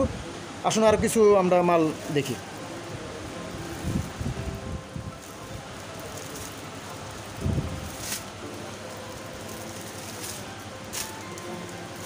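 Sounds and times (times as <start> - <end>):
steady background noise: 0.0 - 12.0
cloth rustling: 3.4 - 12.0.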